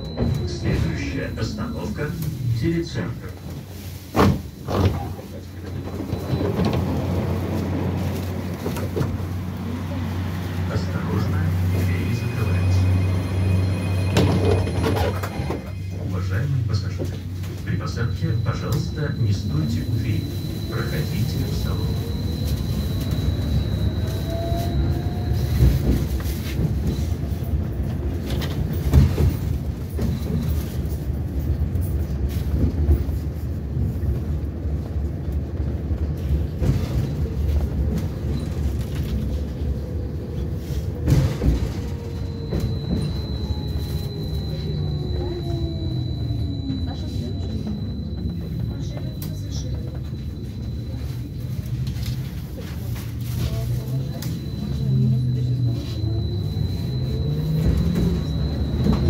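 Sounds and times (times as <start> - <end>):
tram wheels rumbling on rail: 0.0 - 59.0
traction drive whine: 37.9 - 52.4, 53.8 - 59.0.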